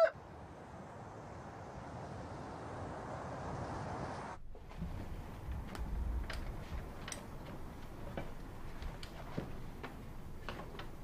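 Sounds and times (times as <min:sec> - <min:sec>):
rooster crowing: 0:00.0 - 0:00.2.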